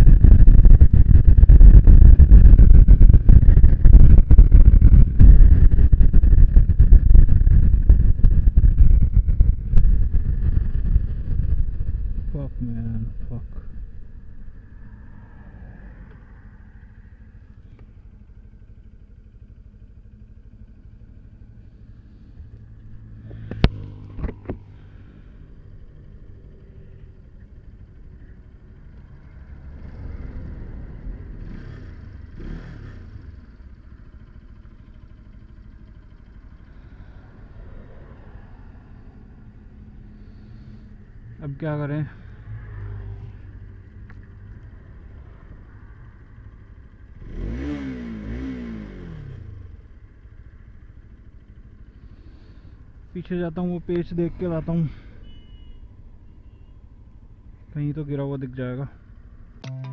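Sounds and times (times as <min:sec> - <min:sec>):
motorcycle riding at speed: 0:00.0 - 0:58.3
wind and road rumble: 0:00.0 - 0:59.6.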